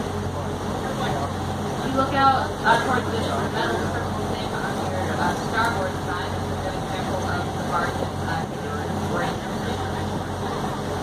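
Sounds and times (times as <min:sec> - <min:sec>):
boat engine humming: 0:00.0 - 0:11.0
faint voices: 0:00.0 - 0:11.0
indistinct talking: 0:00.0 - 0:11.0
water: 0:00.0 - 0:11.0.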